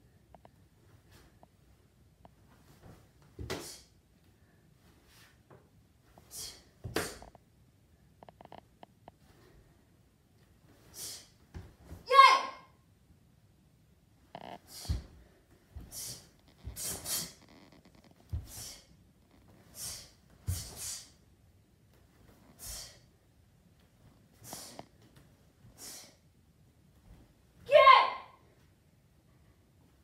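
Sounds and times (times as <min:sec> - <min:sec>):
boy shouting karate kiai: 0:12.0 - 0:12.8, 0:27.6 - 0:28.4.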